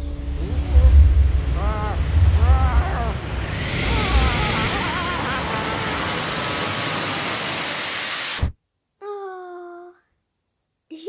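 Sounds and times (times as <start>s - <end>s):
rushing air: 0.0s - 8.6s.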